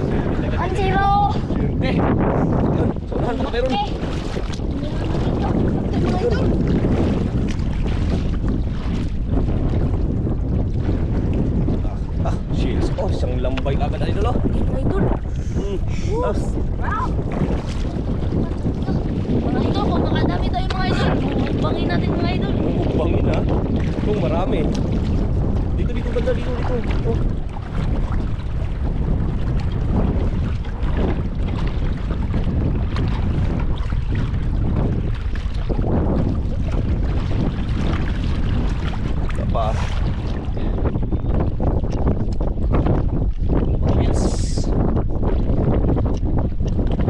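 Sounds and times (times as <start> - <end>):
wind buffeting microphone: 0.0 - 47.0
feet wading through water: 2.5 - 13.2, 14.3 - 43.8.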